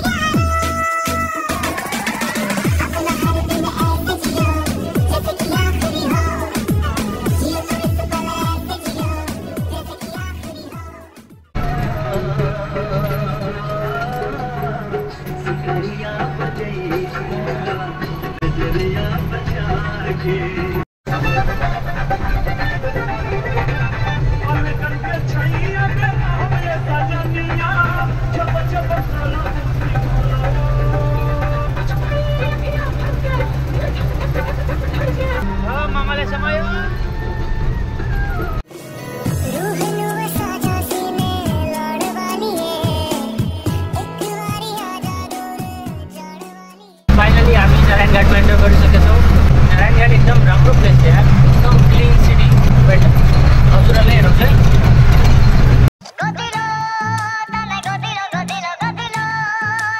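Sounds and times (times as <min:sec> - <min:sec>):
heavy vehicle engine droning: 0:11.6 - 0:40.7, 0:47.1 - 0:55.9
person talking: 0:39.6 - 0:54.7
man talking: 0:47.1 - 0:54.7.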